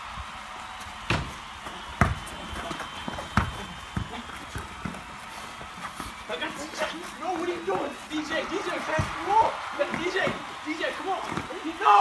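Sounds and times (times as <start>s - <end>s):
basketball bouncing: 1.0s - 5.2s, 8.8s - 10.5s, 11.2s - 11.6s.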